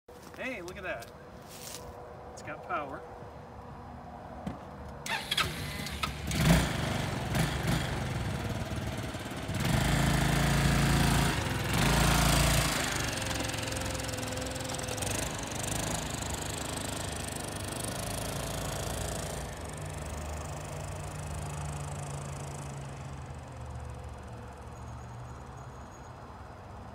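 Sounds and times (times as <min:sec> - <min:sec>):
scooter engine revving: 0:05.0 - 0:24.6.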